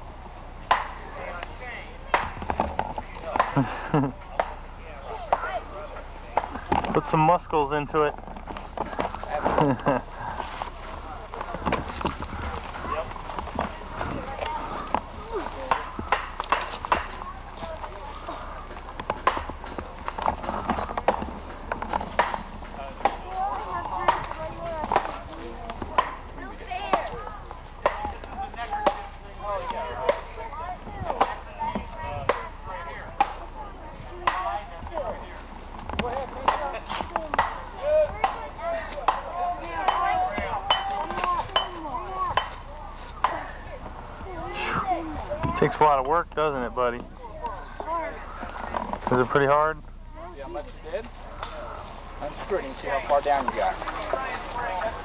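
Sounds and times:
children chattering: 0:00.0 - 0:55.0
rotten wood knocking and crunching: 0:08.1 - 0:44.4.

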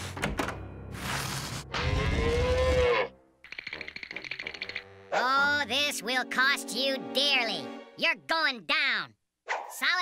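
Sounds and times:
cartoon cow mooing: 0:01.7 - 0:03.1.

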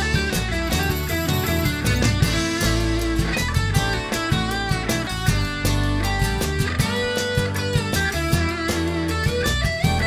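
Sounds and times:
bass: 0:00.0 - 0:10.0
drum beat: 0:00.0 - 0:10.0
electric guitars: 0:00.0 - 0:10.0.

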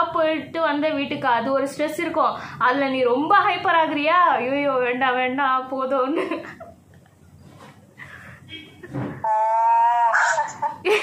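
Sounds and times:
woman speaking: 0:00.0 - 0:06.4
woman's long held vowel: 0:09.2 - 0:10.6.

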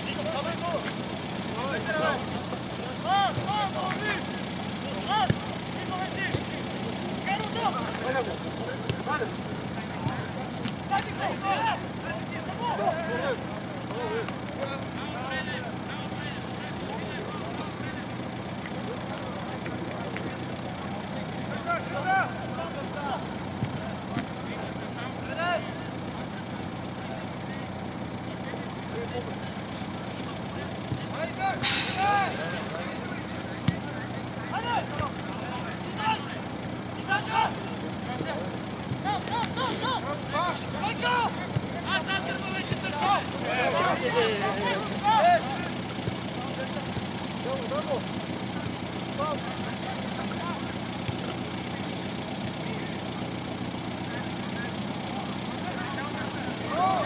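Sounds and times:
players shouting calls: 0:00.0 - 0:57.0.

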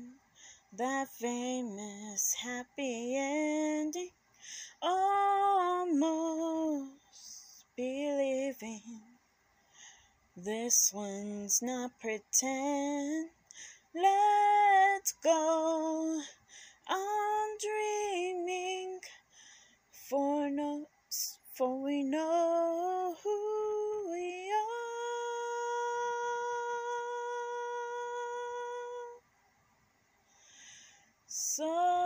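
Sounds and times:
woman singing unaccompanied: 0:00.0 - 0:09.2, 0:10.4 - 0:19.2, 0:19.9 - 0:29.2, 0:31.3 - 0:32.0.

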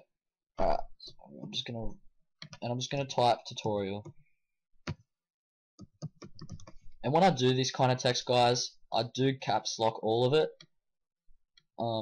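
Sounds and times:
typing on keyboard: 0:05.8 - 0:06.8.

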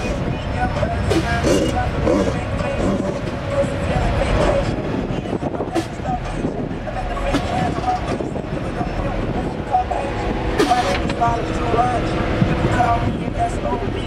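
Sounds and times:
car engine running low: 0:00.0 - 0:14.0
people talking: 0:00.0 - 0:14.0.

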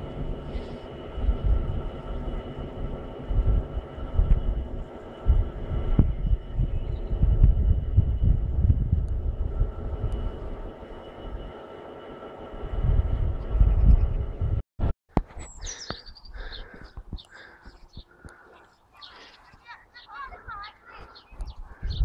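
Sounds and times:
wind gusts on microphone: 0:00.0 - 0:11.6, 0:12.5 - 0:14.6, 0:19.8 - 0:22.0
distant diesel locomotive hum: 0:00.0 - 0:14.6.

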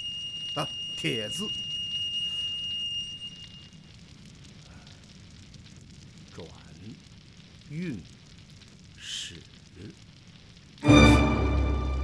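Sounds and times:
thin high steady tone: 0:00.0 - 0:03.9
torch flame crackling and rumbling: 0:00.0 - 0:12.0.

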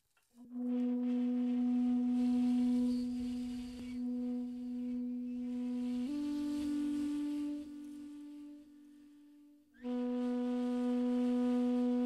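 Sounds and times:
long flute note: 0:00.4 - 0:12.0.

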